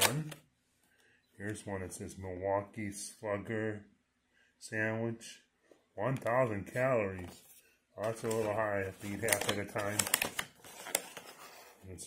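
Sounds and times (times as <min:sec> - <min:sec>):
plastic containers clicking and crackling: 0:08.0 - 0:11.6.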